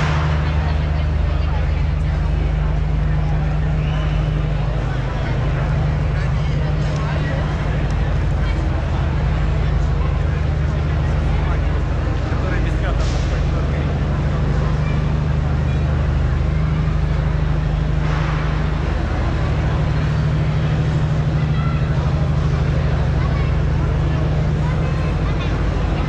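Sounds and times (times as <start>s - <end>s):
generator humming: 0.0s - 26.0s
street crowd chatter: 0.0s - 26.0s.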